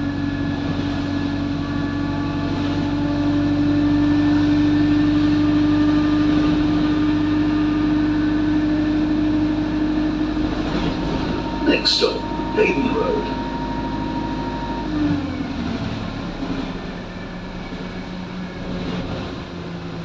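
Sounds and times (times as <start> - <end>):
bus engine drone from inside: 0.0 - 20.0.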